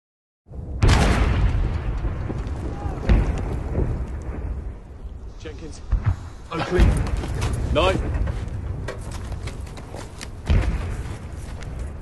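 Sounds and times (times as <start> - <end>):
distant shellfire boom: 0.5 - 5.0, 5.8 - 9.0, 10.4 - 11.4.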